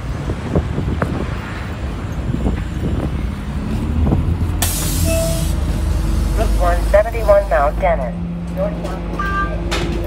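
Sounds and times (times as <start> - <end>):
bus diesel engine idling: 1.8 - 10.0
compressed air hiss: 4.6 - 5.7.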